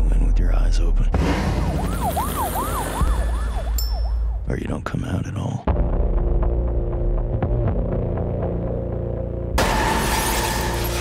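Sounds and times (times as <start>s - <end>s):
siren yelping: 1.6s - 3.8s.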